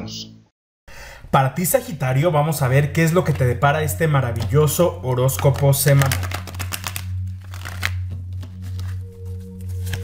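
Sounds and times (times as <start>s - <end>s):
cards being shuffled: 5.2s - 10.0s.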